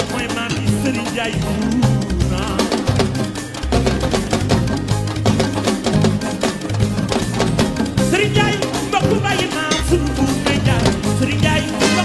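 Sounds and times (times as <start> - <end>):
driving bass line: 0.0 - 12.0
fast dense percussion: 0.0 - 12.0.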